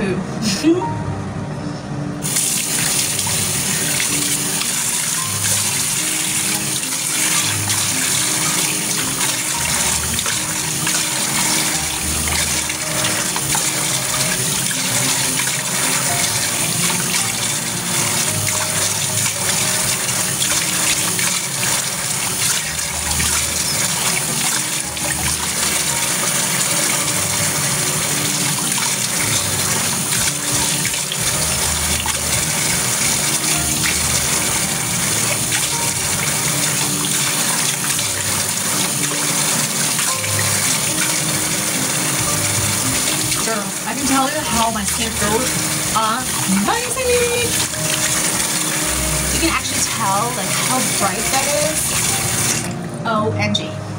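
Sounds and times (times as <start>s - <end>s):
tap water running: 2.2s - 53.2s.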